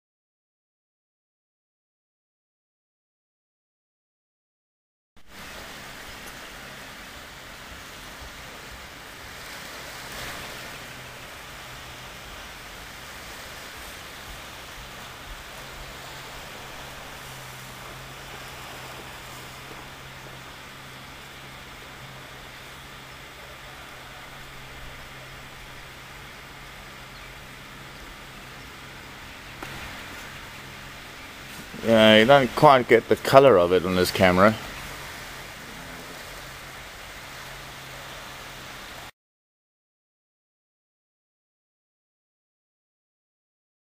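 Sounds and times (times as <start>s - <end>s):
steady hiss: 5.2s - 39.1s.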